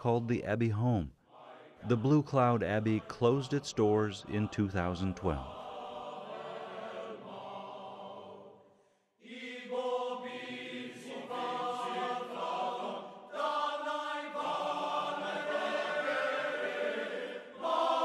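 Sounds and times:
choir singing a slow chant: 1.2 - 18.0.

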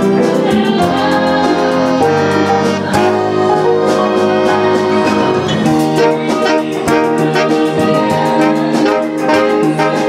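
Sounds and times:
person singing: 0.0 - 10.0
pit orchestra with piano: 0.0 - 10.0.

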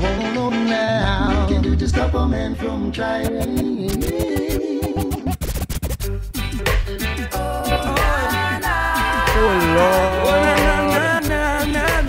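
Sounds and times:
music: 0.0 - 12.0
record scratching: 3.1 - 6.2.

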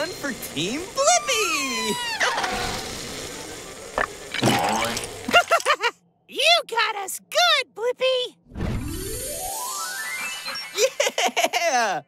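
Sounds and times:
cartoon character laughing: 5.3 - 6.0, 10.3 - 12.0.

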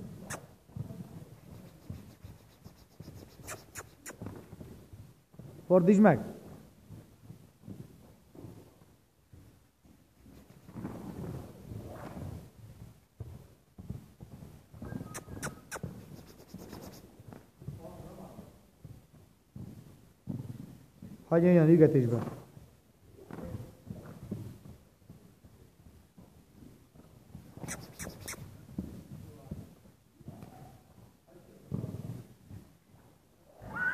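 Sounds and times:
horse hoofbeats on sand: 0.0 - 33.7
sharp clicks: 27.6 - 28.4.

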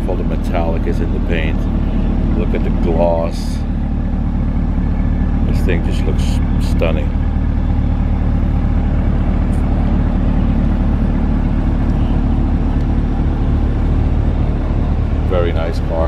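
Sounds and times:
loud low machine hum: 0.0 - 16.0.

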